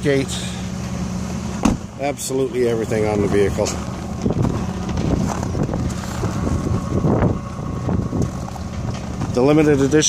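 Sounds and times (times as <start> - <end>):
vehicle engine idling: 0.0 - 10.0
wind buffeting microphone: 4.0 - 9.6.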